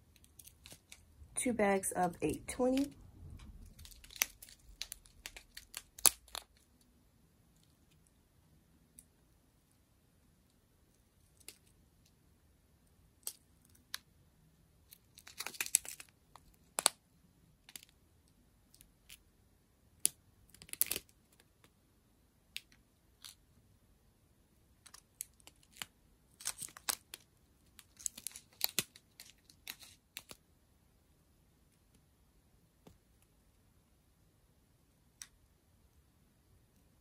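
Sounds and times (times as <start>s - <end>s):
plastic bags crinkling: 3.6s - 6.6s.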